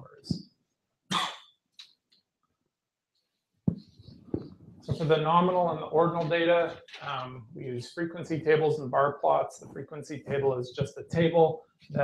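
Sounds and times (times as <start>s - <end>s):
man coughing: 1.1s - 1.4s.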